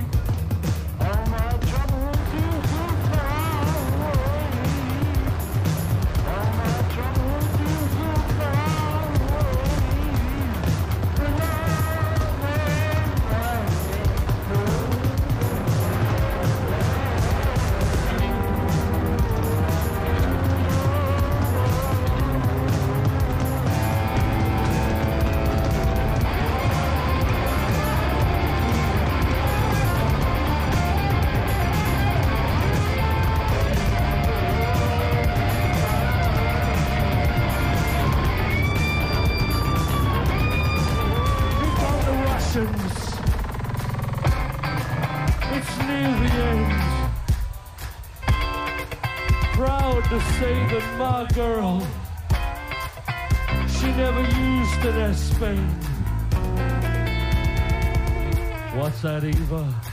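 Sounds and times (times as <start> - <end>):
bending guitar notes: 0.0 - 59.9
heavy bass: 0.0 - 59.9
steady drum beat: 0.0 - 59.9.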